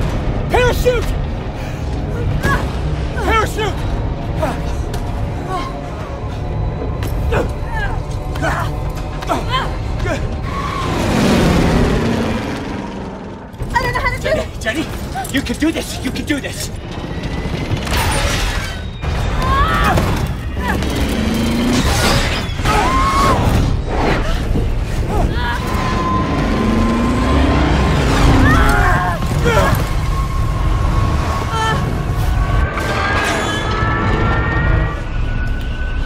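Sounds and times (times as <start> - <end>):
booming impacts: 9.8 - 13.6.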